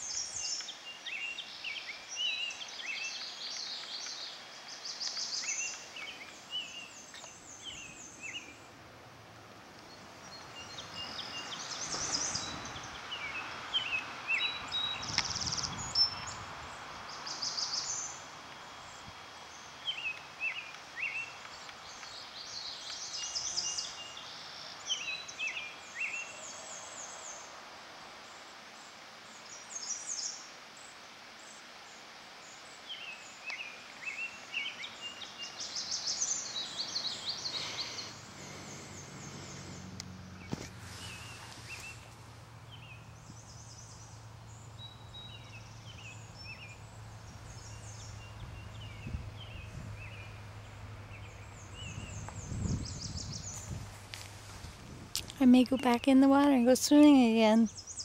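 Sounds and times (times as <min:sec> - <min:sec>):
outdoor background hiss: 0:00.0 - 0:58.0
songbirds chirping: 0:00.0 - 0:58.0.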